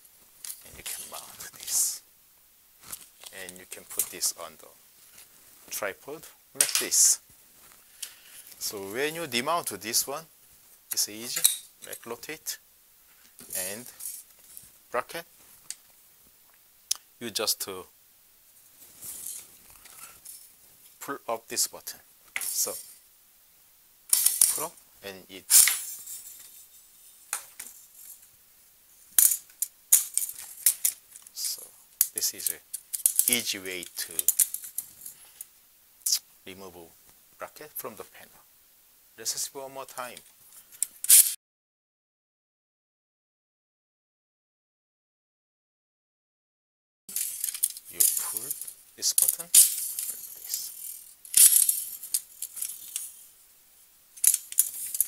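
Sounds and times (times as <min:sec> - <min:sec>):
person speaking: 0:00.6 - 0:02.1, 0:03.2 - 0:04.8, 0:05.7 - 0:07.3, 0:08.6 - 0:10.3, 0:10.9 - 0:12.6, 0:13.4 - 0:14.1, 0:14.9 - 0:15.3, 0:16.9 - 0:17.9, 0:21.0 - 0:22.8, 0:24.2 - 0:25.7, 0:31.3 - 0:34.4, 0:36.0 - 0:38.5, 0:39.2 - 0:40.3, 0:47.1 - 0:52.8
metal bracket clinking and rattling: 0:24.1 - 0:24.7, 0:29.2 - 0:31.3, 0:47.1 - 0:53.3, 0:54.2 - 0:55.0.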